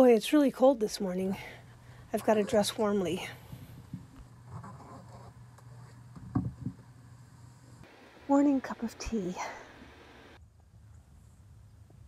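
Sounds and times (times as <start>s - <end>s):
space heater humming: 0.6s - 10.4s.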